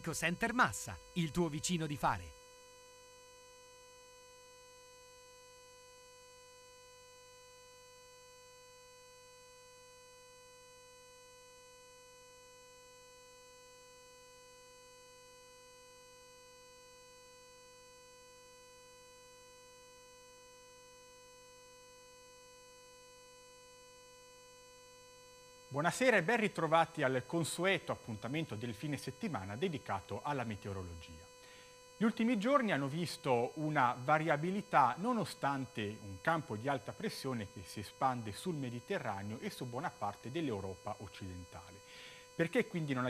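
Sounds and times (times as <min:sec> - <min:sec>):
faint electrical hum and whine: 0:00.0 - 0:43.0.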